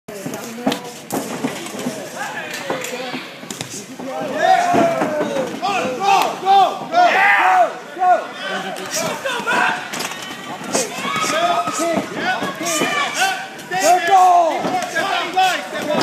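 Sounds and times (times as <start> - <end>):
spectators shouting: 4.1 - 16.0.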